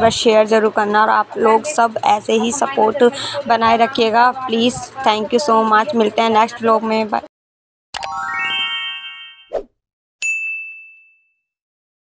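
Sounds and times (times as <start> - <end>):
bright bell ding: 10.2 - 11.5.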